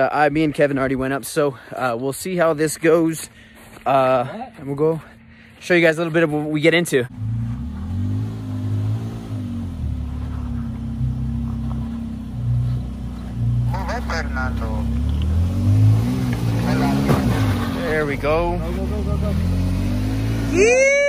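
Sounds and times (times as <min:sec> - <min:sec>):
truck engine revving: 0:07.1 - 0:21.0.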